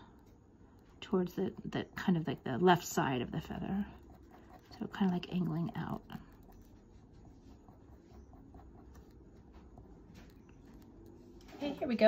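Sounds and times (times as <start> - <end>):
ink pen scratching on paper: 1.5 - 10.9.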